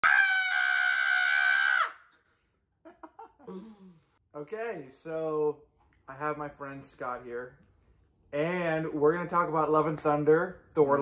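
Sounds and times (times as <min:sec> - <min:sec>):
high-pitched scream: 0:00.0 - 0:02.2.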